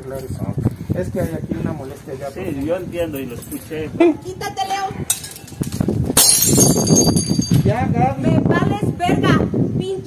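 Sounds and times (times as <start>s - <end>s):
glass shattering: 6.2s - 7.6s
broken glass tinkling: 6.2s - 7.7s.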